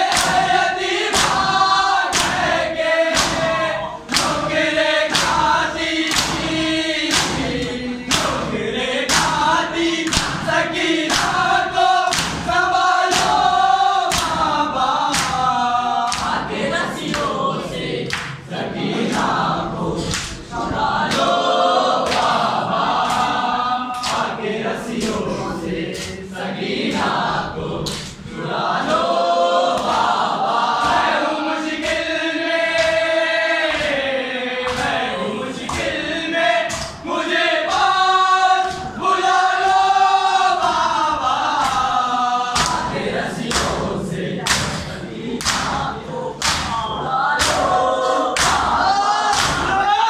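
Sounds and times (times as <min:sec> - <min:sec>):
men chanting in unison: 0:00.0 - 0:50.0
sharp rhythmic beats: 0:00.0 - 0:50.0
palms slapping chests: 0:00.1 - 0:17.4, 0:42.6 - 0:49.8.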